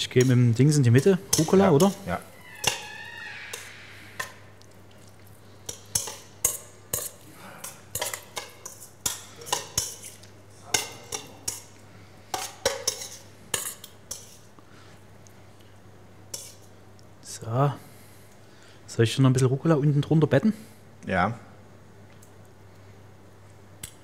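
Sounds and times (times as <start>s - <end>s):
cutlery clinking on steel bowls: 0.0s - 2.8s, 5.0s - 14.5s, 16.3s - 16.7s.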